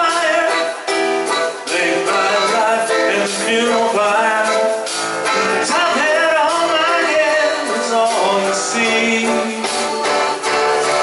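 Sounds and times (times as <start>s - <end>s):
live band with strummed guitars: 0.0s - 11.0s.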